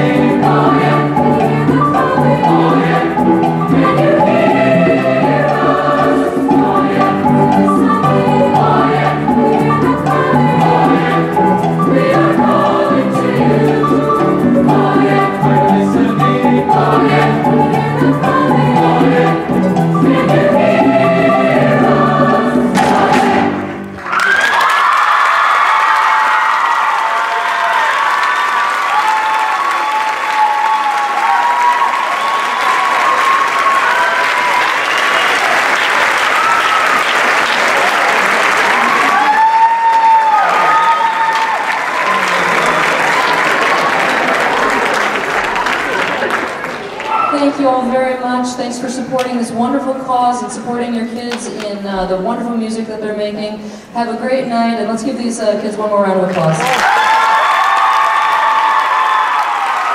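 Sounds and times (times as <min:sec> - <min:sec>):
choir singing: 0:00.0 - 0:23.9
piano: 0:00.0 - 0:27.0
audience applauding: 0:23.8 - 0:47.4, 0:56.3 - 0:59.9
audience cheering: 0:23.9 - 0:47.5, 0:56.4 - 0:59.9.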